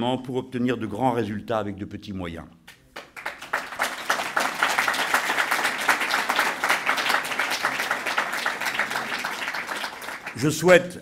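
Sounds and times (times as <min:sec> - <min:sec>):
audience applauding: 0:03.0 - 0:10.7.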